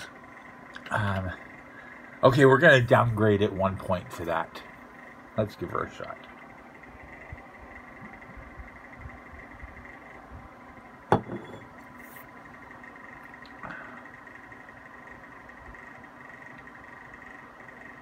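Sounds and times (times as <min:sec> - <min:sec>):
faint steady hum: 0:00.0 - 0:18.0
glass bottle knocking on wooden table: 0:11.1 - 0:11.7.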